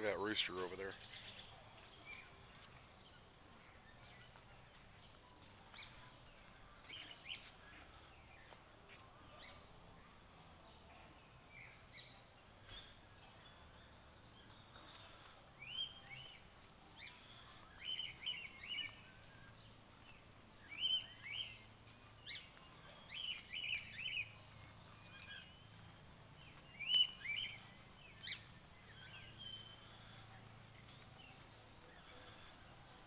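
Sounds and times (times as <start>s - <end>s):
small birds chirping: 0.0s - 33.0s.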